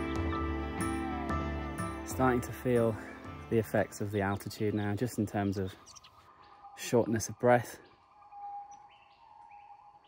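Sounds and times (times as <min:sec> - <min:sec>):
faint bird calls: 0:04.4 - 0:10.0.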